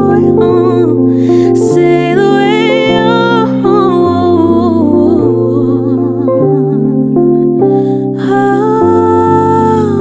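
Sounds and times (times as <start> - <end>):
sustained accompaniment chords: 0.0 - 10.0
woman singing wordless line: 0.0 - 10.0.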